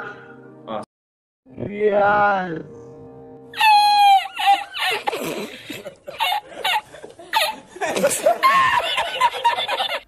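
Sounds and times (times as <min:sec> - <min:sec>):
man laughing hard: 0:03.6 - 0:10.0.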